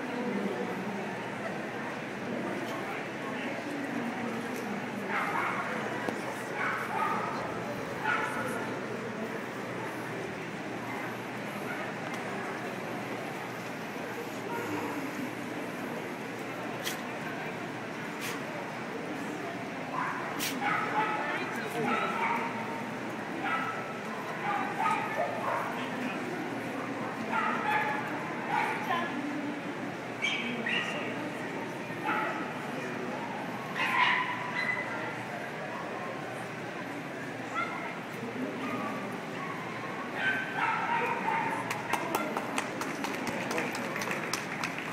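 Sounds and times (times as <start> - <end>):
crowd murmur: 0.0 - 44.9
dog barking: 5.1 - 5.7, 6.6 - 7.4, 27.3 - 28.8, 33.8 - 34.9, 40.2 - 41.6.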